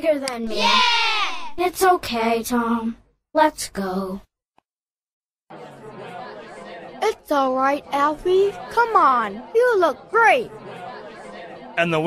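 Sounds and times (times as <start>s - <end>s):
crowd chatter: 5.5s - 12.0s.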